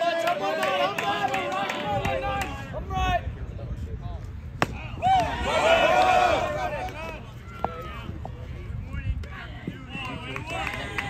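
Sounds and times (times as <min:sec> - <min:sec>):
faint crowd voices: 0:00.0 - 0:11.0
baseball hitting catcher's mitt pop: 0:04.6 - 0:05.3.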